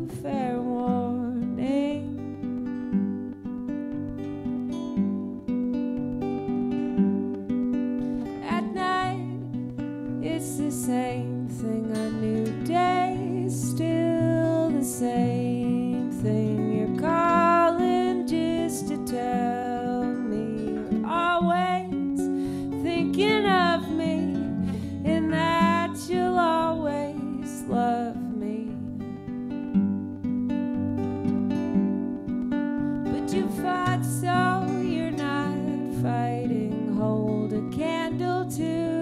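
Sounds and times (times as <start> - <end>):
woman singing: 0.0 - 3.2, 8.2 - 29.5, 33.0 - 39.0
acoustic guitars playing: 0.0 - 39.0.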